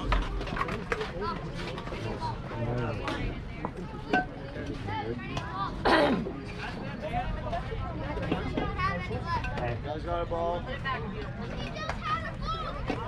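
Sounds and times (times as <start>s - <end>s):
children and adults chattering: 0.0s - 13.0s.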